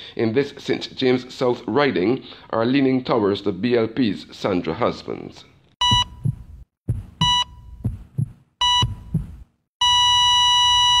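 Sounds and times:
heartbeat thump: 0:05.8 - 0:09.6
heart monitor beep: 0:05.8 - 0:11.0
flatline tone: 0:07.2 - 0:07.9.

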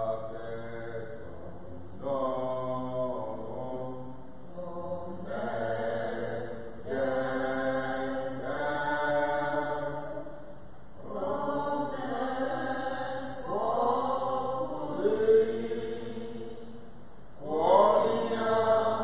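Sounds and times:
hymn singing in long held notes: 0:00.0 - 0:19.0.

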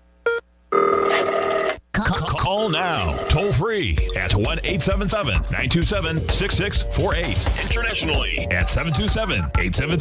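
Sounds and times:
telephone ringing: 0:00.7 - 0:01.8, 0:02.9 - 0:03.6.

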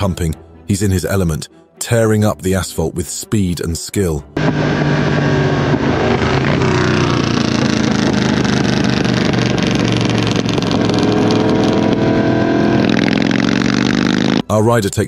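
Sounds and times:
motorcycle engines at speed: 0:04.4 - 0:14.4.

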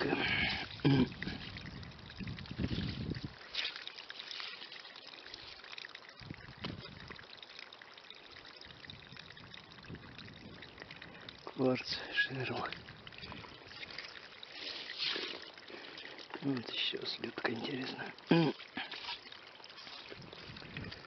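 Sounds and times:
water trickling through gravel: 0:00.0 - 0:21.0.

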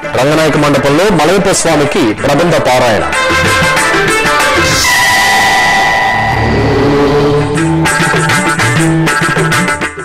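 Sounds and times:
low synth notes: 0:03.0 - 0:09.0
held high synth tone: 0:03.1 - 0:08.9
noisy whoosh: 0:03.3 - 0:08.2.

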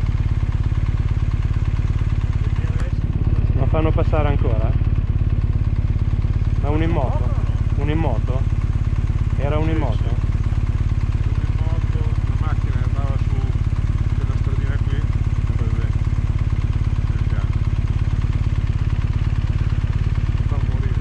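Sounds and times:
motorcycle engine idling: 0:00.0 - 0:21.0.

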